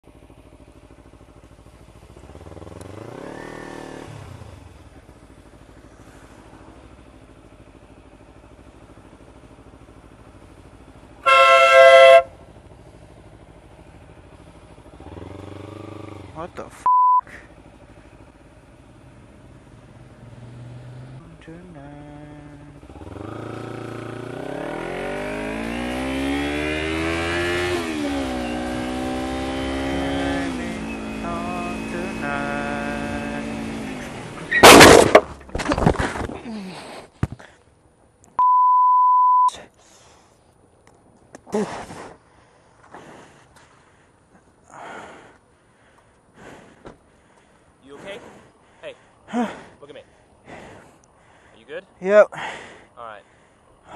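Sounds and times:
motorcycle engine accelerating: 0.0 - 36.8
short beep tone: 16.8 - 17.3, 38.4 - 39.6
loud crash impact: 34.5 - 35.4
scraping and sliding: 34.5 - 37.1.

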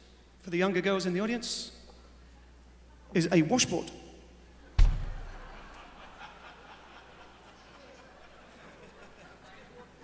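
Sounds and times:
audience chuckling and murmur: 4.4 - 10.0.

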